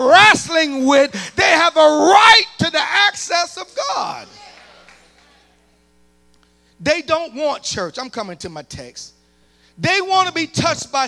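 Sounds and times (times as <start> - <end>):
man speaking: 0.0 - 4.5, 9.8 - 11.0
faint electrical hum: 0.0 - 11.0.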